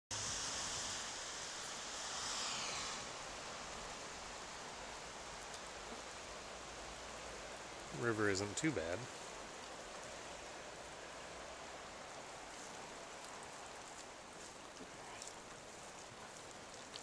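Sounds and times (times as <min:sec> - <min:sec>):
river rushing: 0:00.1 - 0:17.0.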